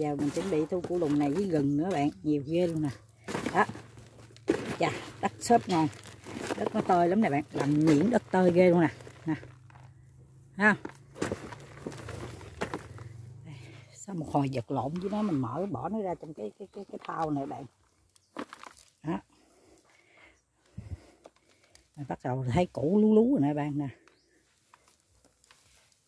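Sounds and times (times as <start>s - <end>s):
hands raking through potting soil: 0.0s - 9.8s, 10.6s - 19.2s, 24.3s - 26.0s.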